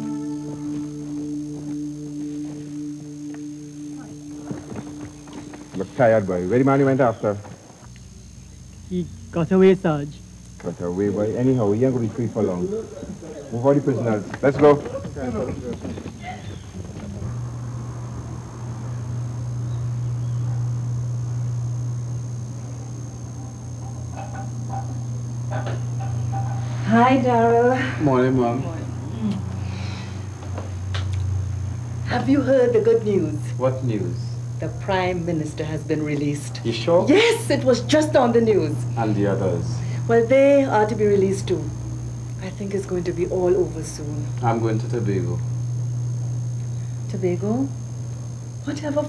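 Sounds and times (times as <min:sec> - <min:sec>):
low drone: 0:00.0 - 0:07.3, 0:16.2 - 0:49.0
high pulsing note: 0:00.0 - 0:07.4, 0:16.5 - 0:49.0
faint high whine: 0:00.0 - 0:49.0
steady low hum: 0:00.0 - 0:49.0.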